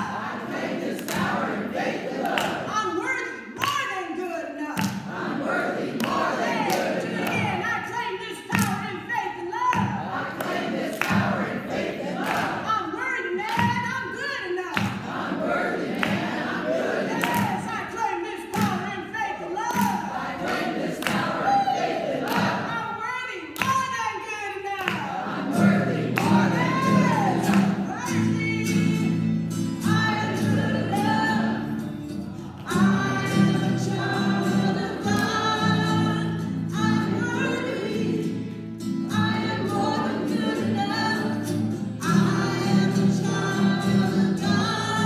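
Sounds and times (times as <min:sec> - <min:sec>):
congregation singing: 0:00.0 - 0:03.0, 0:04.8 - 0:08.0, 0:09.4 - 0:13.0, 0:14.8 - 0:23.1, 0:24.8 - 0:45.0
woman singing: 0:00.0 - 0:45.0
strummed acoustic guitar: 0:09.8 - 0:12.8, 0:24.9 - 0:45.0.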